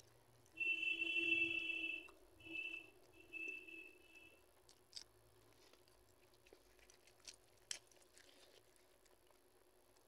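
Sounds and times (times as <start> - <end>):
high-pitched whistle-like tone: 0.6 - 4.3.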